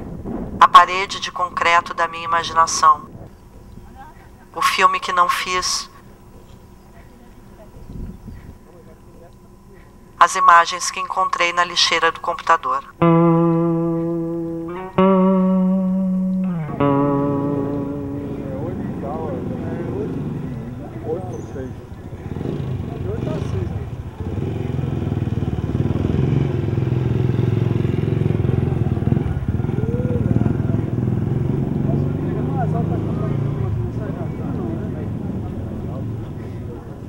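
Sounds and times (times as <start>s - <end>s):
vehicle engine passing: 13.2s - 37.0s
indistinct voices: 16.2s - 37.0s.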